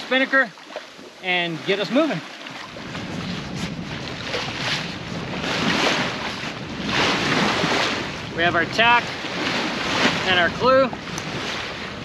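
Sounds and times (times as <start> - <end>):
sea water rushing along hull: 0.0 - 12.0
wind buffeting microphone: 1.0 - 12.0.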